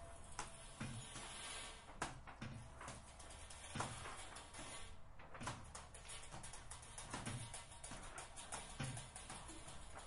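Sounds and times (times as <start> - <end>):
irregular knocks and clicks: 1.9 - 10.0.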